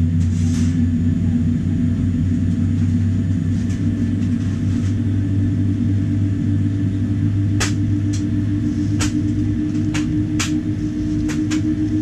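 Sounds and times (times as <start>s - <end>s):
aircraft cabin rumble: 0.0s - 12.0s
thin steady hum: 0.0s - 12.0s.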